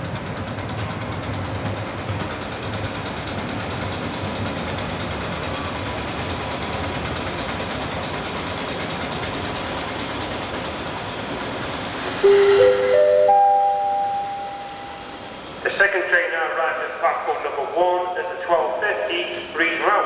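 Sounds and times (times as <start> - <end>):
diesel train engine droning: 0.0 - 20.0
train wheels on rails: 0.0 - 20.0.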